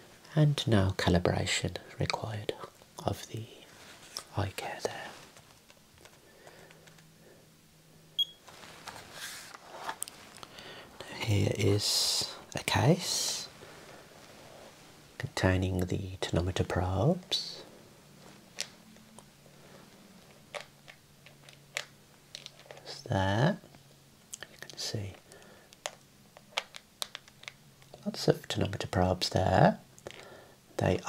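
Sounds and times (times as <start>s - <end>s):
faint low hum: 0.0s - 31.0s
soft handling rustle: 1.8s - 7.4s, 8.3s - 23.0s.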